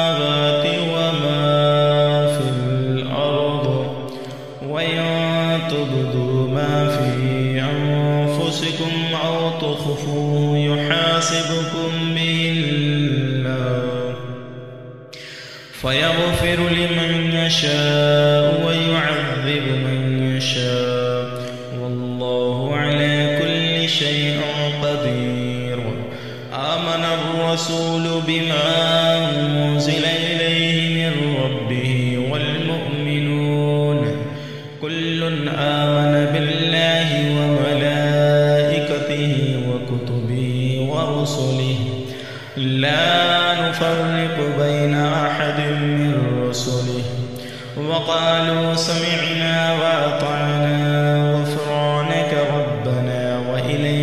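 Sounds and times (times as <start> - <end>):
man chanting melodically: 0.0 - 54.0.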